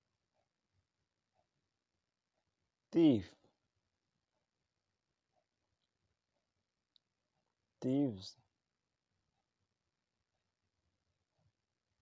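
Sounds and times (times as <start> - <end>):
man's voice: 2.9 - 3.5, 7.8 - 8.4.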